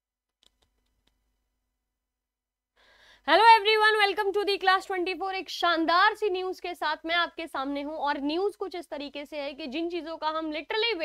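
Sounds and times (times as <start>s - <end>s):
soft intake of breath: 2.8s - 3.2s.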